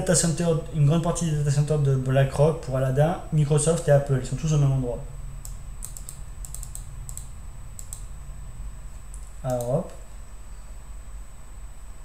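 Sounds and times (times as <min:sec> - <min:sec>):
faint low hum: 0:00.0 - 0:12.0
computer clicks: 0:05.4 - 0:08.2, 0:08.9 - 0:10.1.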